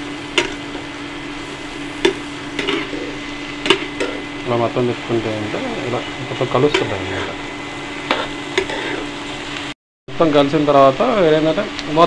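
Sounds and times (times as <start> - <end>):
vegetables sizzling in pan: 0.0 - 9.8
spoon scraping vegetables: 8.0 - 9.1.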